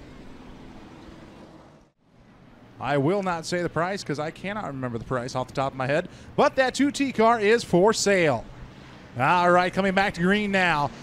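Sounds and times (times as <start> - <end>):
race car engines droning: 0.0 - 11.0.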